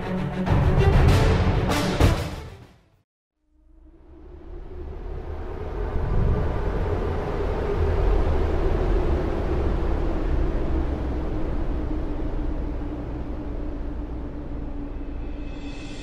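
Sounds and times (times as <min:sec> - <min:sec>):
deep rumbling drone: 0:03.5 - 0:16.0
faint hum: 0:03.6 - 0:16.0.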